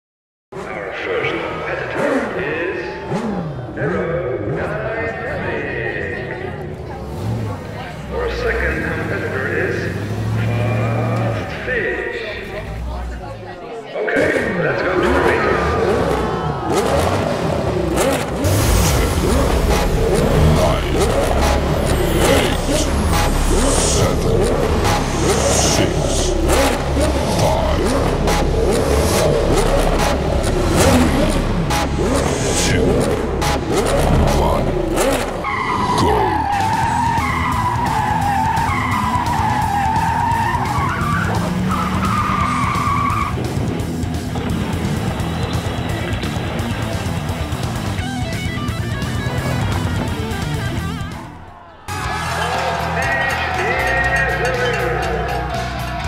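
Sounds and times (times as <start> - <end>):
crowd chatter: 0.5 - 37.9, 40.0 - 56.0
race car engines: 0.5 - 56.0
tyres skidding: 0.6 - 56.0.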